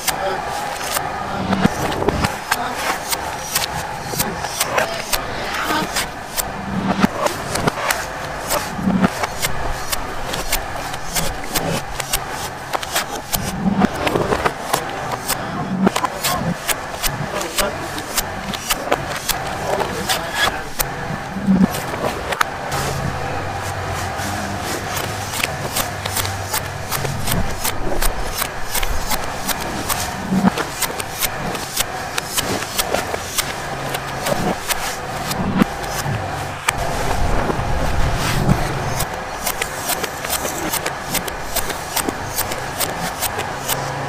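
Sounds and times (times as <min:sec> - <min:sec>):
knife chopping coconut husk: 0:00.0 - 0:05.2, 0:21.6 - 0:36.8, 0:38.4 - 0:43.9
steady background noise: 0:00.0 - 0:44.0.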